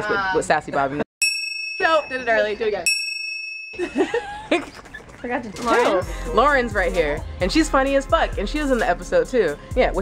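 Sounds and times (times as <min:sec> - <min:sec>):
bell ding: 0:01.2 - 0:03.9
voices: 0:03.9 - 0:10.0.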